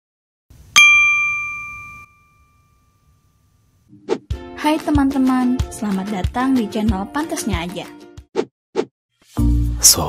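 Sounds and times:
bell-like ding: 0:00.8 - 0:03.4.

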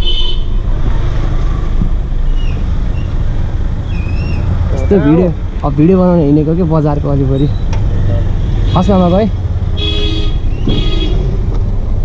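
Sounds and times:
car engine rumbling: 0:00.0 - 0:12.0
man talking: 0:04.7 - 0:07.5.

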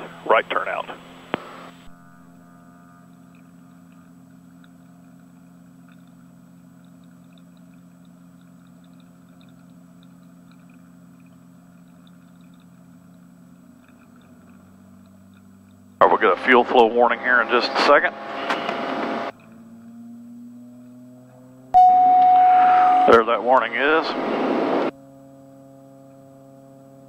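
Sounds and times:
piston aircraft engine drone: 0:00.0 - 0:27.0.

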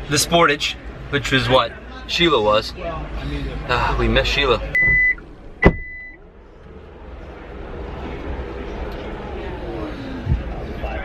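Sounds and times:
exhibition hall background noise: 0:00.0 - 0:11.0
faint distant voices: 0:06.2 - 0:11.0.

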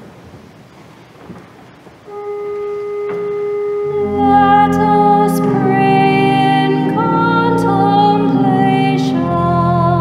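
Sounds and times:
steady organ note: 0:02.1 - 0:10.0.

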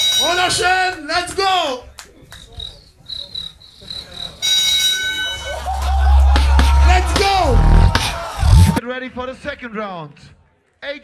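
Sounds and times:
deep sustained bass: 0:05.5 - 0:08.8
beatboxing into a microphone: 0:05.8 - 0:08.8.

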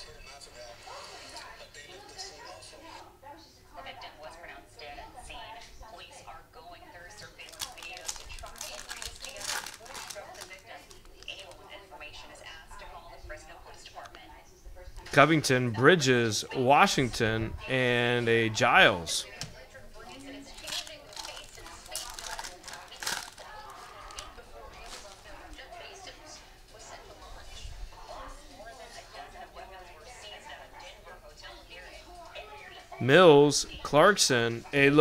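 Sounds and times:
foil wrapper crinkling and tearing: 0:07.4 - 0:11.6, 0:20.6 - 0:25.6.

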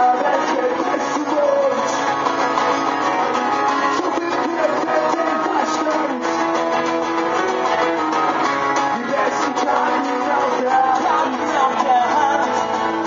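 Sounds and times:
acoustic guitars strumming: 0:00.0 - 0:13.0.

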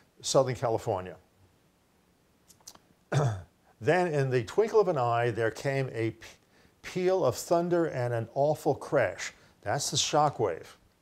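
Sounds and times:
man speaking: 0:00.2 - 0:01.3, 0:03.2 - 0:10.9
faint short clicks: 0:02.4 - 0:02.9.

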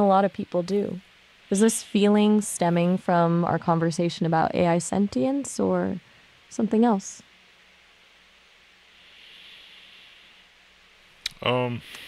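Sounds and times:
low hum: 0:00.0 - 0:11.8
background hiss: 0:00.0 - 0:12.0.

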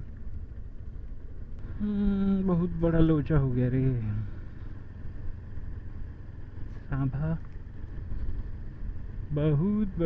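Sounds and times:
motorcycle engine rumbling: 0:00.0 - 0:10.0
person speaking: 0:01.6 - 0:04.3.

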